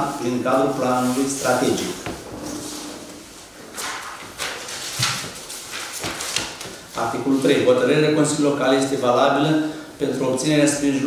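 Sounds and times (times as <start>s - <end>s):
paper rustling and shuffling: 0.2s - 7.7s.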